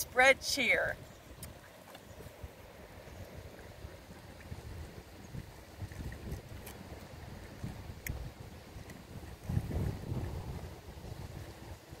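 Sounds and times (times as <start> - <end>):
wind buffeting microphone: 0.7 - 12.0.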